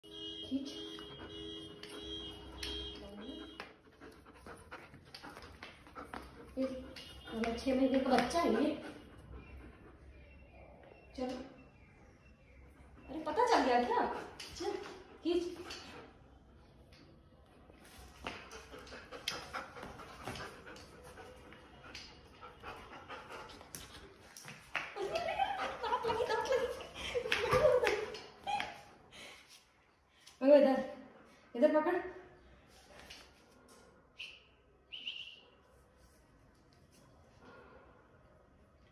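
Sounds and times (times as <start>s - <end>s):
dog panting: 3.4s - 10.2s, 18.5s - 24.2s.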